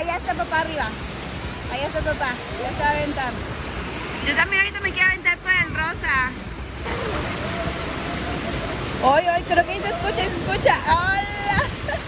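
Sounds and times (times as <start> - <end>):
water rushing down a slide: 6.1 - 12.0.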